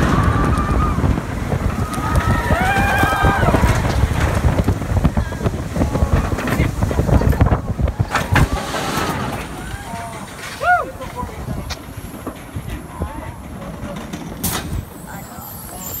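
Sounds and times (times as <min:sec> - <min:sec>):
roller coaster rumbling on track: 0:00.0 - 0:16.0
wind on microphone: 0:00.0 - 0:16.0
riders' voices: 0:01.7 - 0:16.0.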